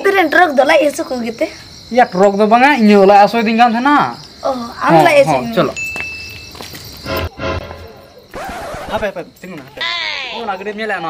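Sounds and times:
man and woman talking: 0.0s - 5.8s, 8.9s - 11.0s
crickets chirping: 0.0s - 11.0s.

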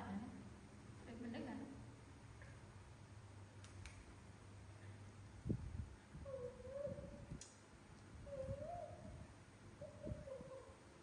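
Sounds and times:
monkey whimpering coo calls: 6.2s - 7.2s, 8.2s - 9.1s, 9.8s - 10.8s.

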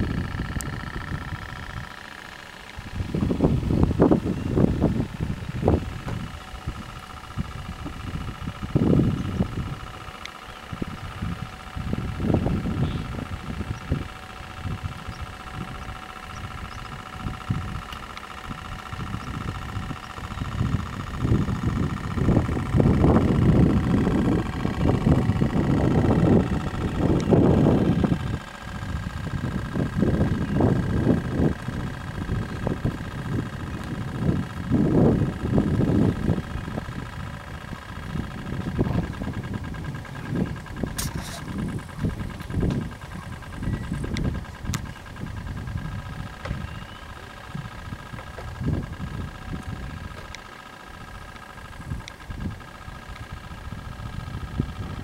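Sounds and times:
low rumble gusts: 0.0s - 55.0s
motor hum: 0.0s - 55.0s.

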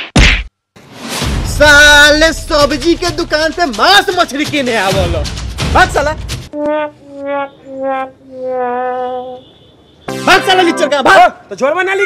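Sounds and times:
heavy punch whack: 0.0s - 0.5s
rising swell into musical note: 10.1s - 11.4s.

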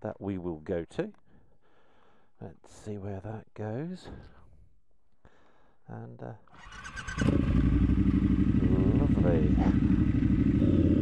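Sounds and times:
motorcycle starter cranking: 6.6s - 8.6s
motorcycle engine idling: 6.6s - 11.0s.

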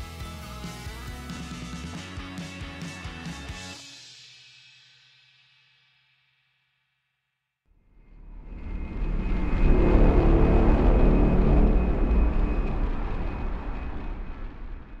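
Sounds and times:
deep rumbling swell: 7.8s - 15.0s.

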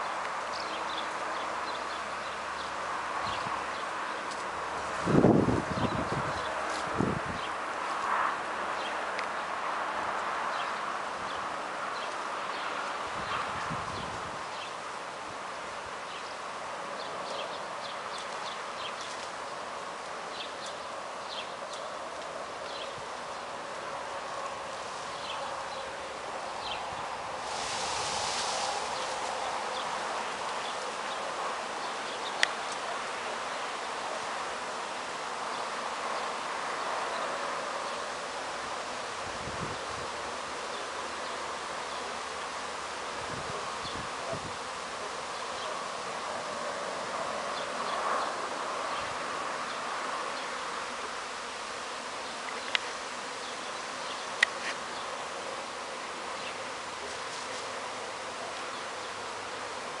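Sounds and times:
swarm of bees buzzing: 0.0s - 60.0s.

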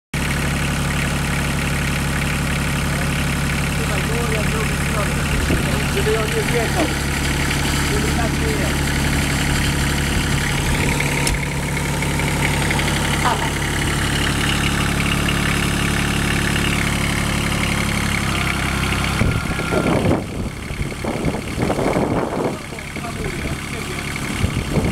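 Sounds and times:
tractor diesel engine idling: 0.2s - 24.9s.

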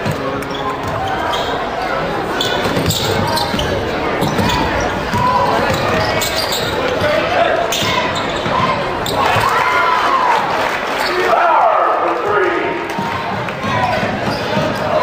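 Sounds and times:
crowd chatter and shouts: 0.0s - 15.0s.

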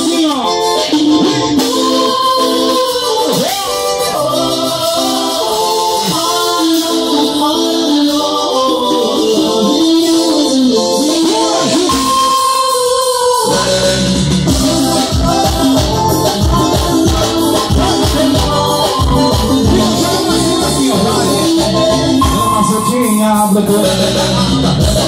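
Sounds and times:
electronic keyboard: 0.0s - 25.0s
person singing: 0.0s - 25.0s
bass and drum beat: 13.4s - 25.0s.

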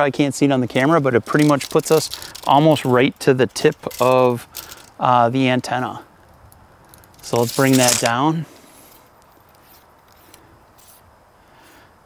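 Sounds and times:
metal rubbing on metal: 7.2s - 8.2s.

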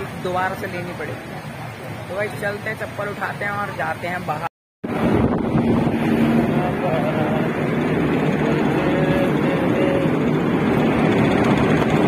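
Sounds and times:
electric fans whooshing: 0.0s - 12.0s.

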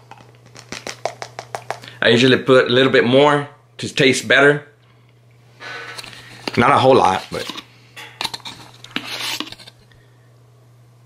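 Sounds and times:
plastic scoop tapping container rim: 0.1s - 1.8s.

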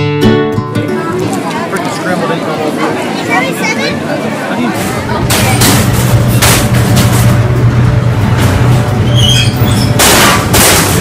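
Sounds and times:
strummed guitar music: 0.0s - 2.0s
crowd chatter: 0.0s - 11.0s.

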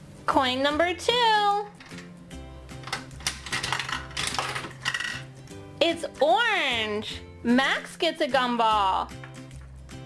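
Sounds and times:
background music: 0.0s - 10.0s
coin mechanism clicks and rattles: 2.8s - 5.4s.

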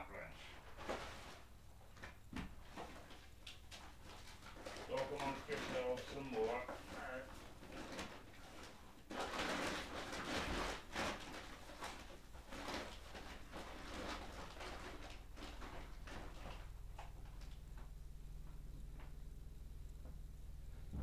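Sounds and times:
rustling: 0.4s - 21.0s
muffled voice: 4.9s - 7.3s.

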